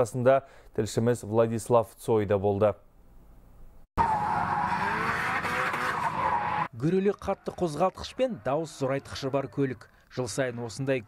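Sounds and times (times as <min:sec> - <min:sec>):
car tyres squealing: 0:04.0 - 0:10.3.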